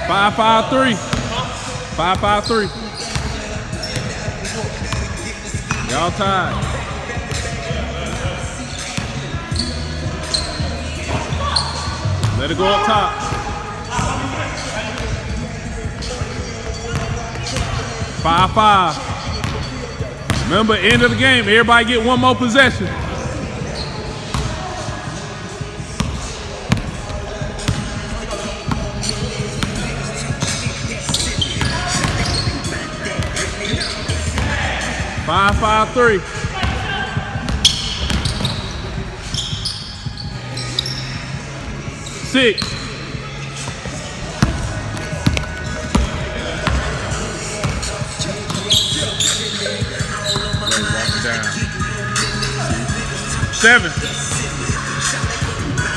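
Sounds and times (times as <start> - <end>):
indistinct background voices: 1.2 - 20.6, 21.2 - 55.9.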